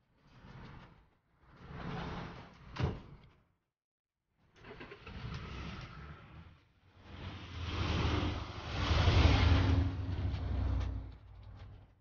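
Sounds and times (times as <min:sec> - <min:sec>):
street traffic: 0:07.6 - 0:11.7.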